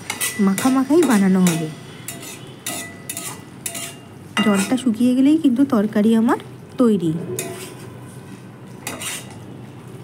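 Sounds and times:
metal spatula scraping a pan: 0:00.0 - 0:05.0, 0:07.4 - 0:09.5.

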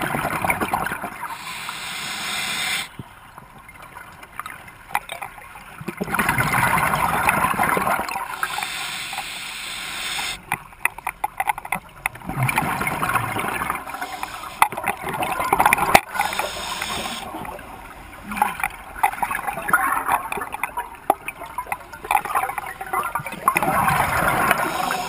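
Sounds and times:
diver breathing through regulator: 0:01.3 - 0:03.0, 0:08.3 - 0:10.4, 0:13.9 - 0:14.7, 0:16.1 - 0:17.3, 0:24.3 - 0:25.0
bubbles rushing and gurgling: 0:05.8 - 0:10.4, 0:12.1 - 0:25.0.

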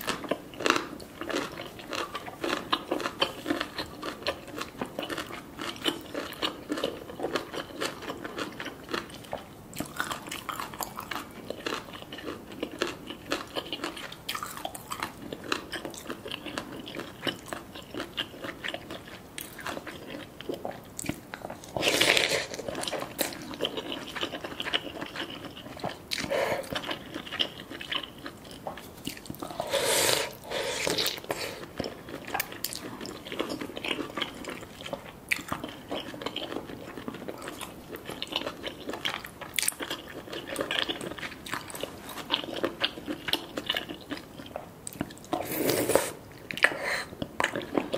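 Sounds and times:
wet chewing and mouth smacks: 0:00.1 - 0:47.9
slurping noodles: 0:29.4 - 0:31.7, 0:45.4 - 0:46.2.

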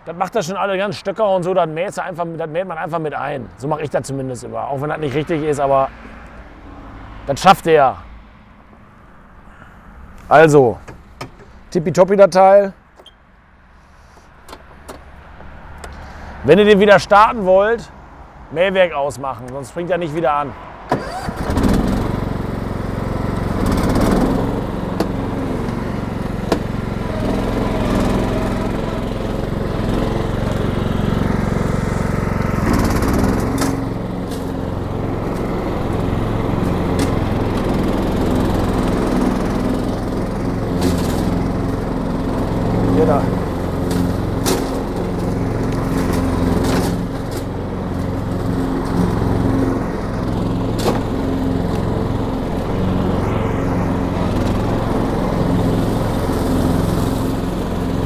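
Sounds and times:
ride-on mower engine: 0:13.8 - 0:18.6, 0:19.4 - 0:58.0.

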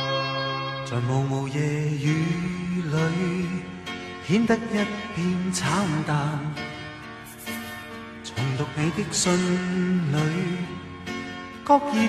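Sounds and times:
slow pop ballad instrumental: 0:00.0 - 0:12.0.

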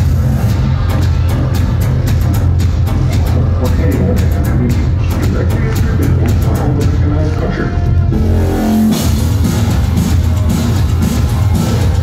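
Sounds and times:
live industrial band music: 0:00.0 - 0:12.0
held pitched note: 0:08.1 - 0:09.2.

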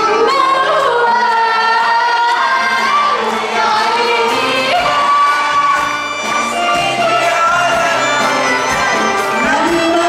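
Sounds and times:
live band music: 0:00.0 - 0:10.0
male and female vocal duet: 0:00.0 - 0:10.0
percussion: 0:00.0 - 0:10.0.

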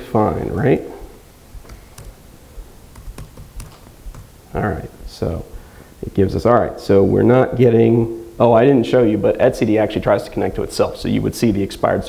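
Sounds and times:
keyboard key clicks: 0:01.6 - 0:02.2, 0:02.9 - 0:04.3.

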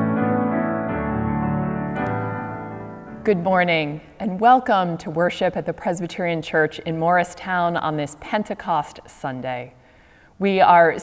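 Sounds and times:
slow piano chords: 0:00.0 - 0:03.4.

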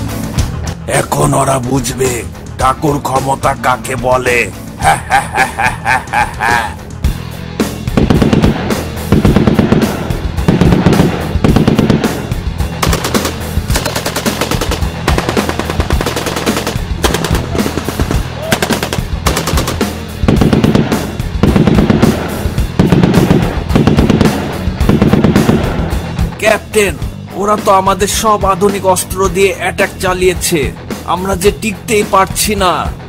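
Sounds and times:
automatic rifle fire: 0:08.0 - 0:25.8.

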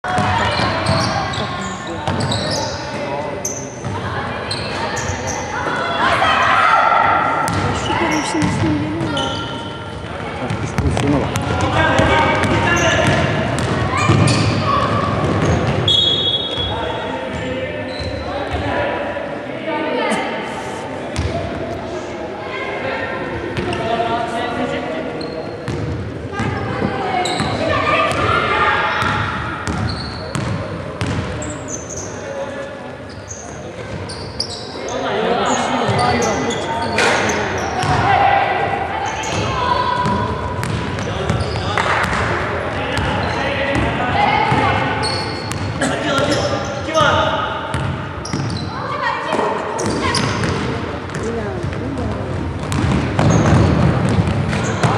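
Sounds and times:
voices calling out: 0:04.4 - 0:11.2.

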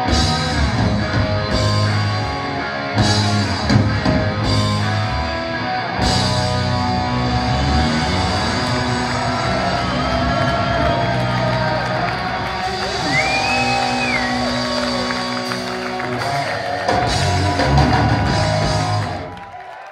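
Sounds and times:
hard rock band playing: 0:00.0 - 0:19.4.

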